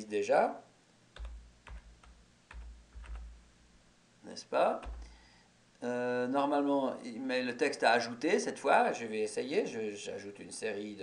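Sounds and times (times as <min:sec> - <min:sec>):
computer keyboard keystrokes: 0:01.2 - 0:03.4, 0:04.8 - 0:05.2.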